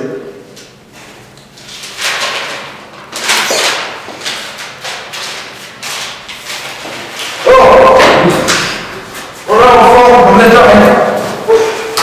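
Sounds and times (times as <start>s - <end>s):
man yelling: 7.4s - 8.5s, 9.5s - 11.7s.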